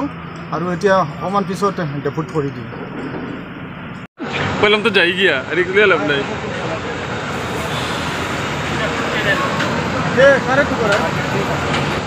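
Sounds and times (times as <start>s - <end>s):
vehicle traffic: 0.0s - 12.0s.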